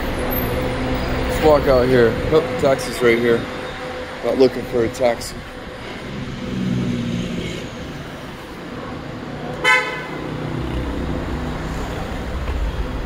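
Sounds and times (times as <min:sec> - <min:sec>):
traffic engines rumbling: 0:00.0 - 0:13.0
vehicle horn toot: 0:09.6 - 0:10.3.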